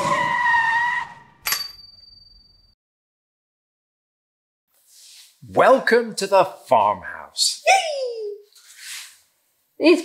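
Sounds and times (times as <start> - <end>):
cartoon tyre screech: 0.0 - 1.4
bright ringing ping: 1.4 - 2.8.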